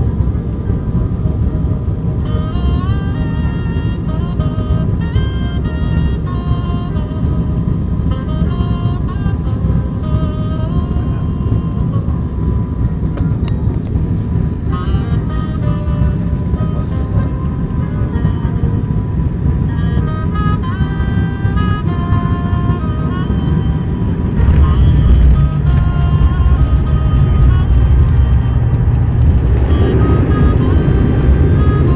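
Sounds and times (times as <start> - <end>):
music melody: 0.0 - 31.9
turboprop engine rumble in cabin: 0.0 - 31.9.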